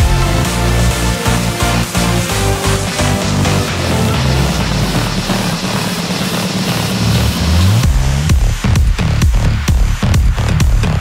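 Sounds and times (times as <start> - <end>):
kick drum: 0.0 - 11.0
sustained bass synth notes: 0.0 - 11.0.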